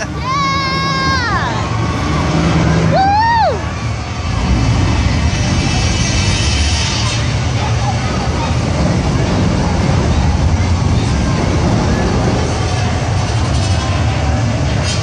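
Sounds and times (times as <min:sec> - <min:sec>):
heavy machine engine rumbling: 0:00.0 - 0:15.0
high whoop: 0:02.9 - 0:03.8.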